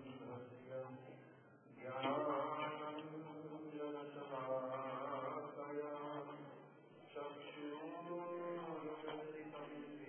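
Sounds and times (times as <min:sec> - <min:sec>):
person chanting in held tones: 0:00.0 - 0:10.0.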